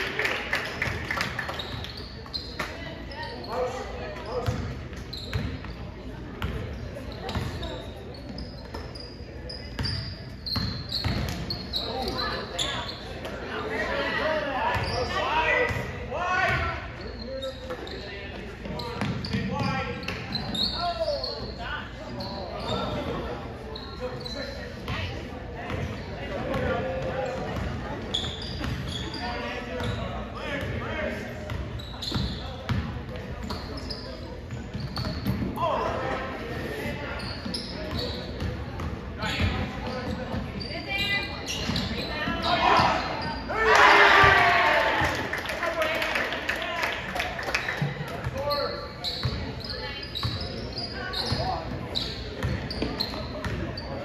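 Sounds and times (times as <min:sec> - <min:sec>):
voices of players and spectators: 0:00.0 - 0:54.0.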